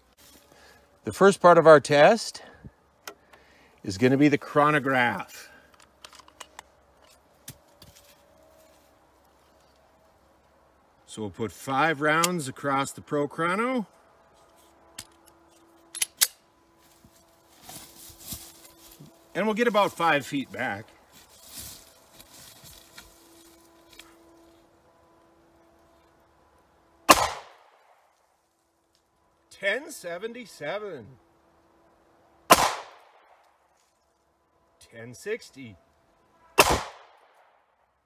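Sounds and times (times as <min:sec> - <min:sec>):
faint steady hum: 0:00.0 - 0:38.0
soft rustling: 0:16.8 - 0:24.8
pistol shot with echo: 0:27.1 - 0:27.7, 0:32.5 - 0:33.2, 0:36.6 - 0:37.2.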